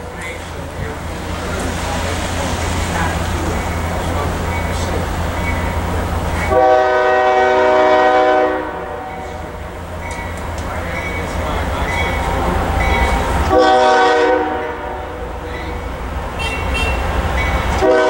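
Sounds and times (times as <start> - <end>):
locomotive horn blast: 6.4 - 9.7, 12.4 - 15.4, 16.3 - 18.0.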